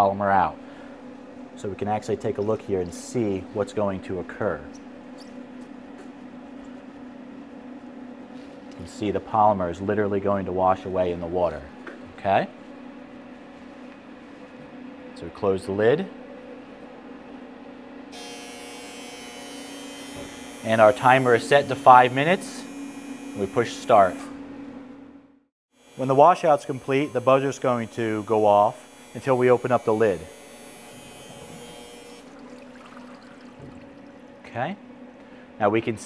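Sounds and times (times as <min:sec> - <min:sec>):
electrical mains hum: 0:00.0 - 0:36.0.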